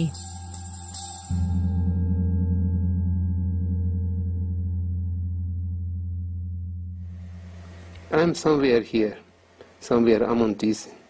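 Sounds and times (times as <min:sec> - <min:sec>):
wavering tone: 0:00.0 - 0:08.3
deep steady drone: 0:00.0 - 0:08.8.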